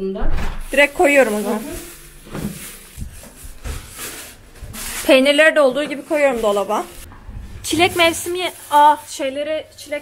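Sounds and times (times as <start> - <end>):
plastic bags rustling: 0.6 - 10.0.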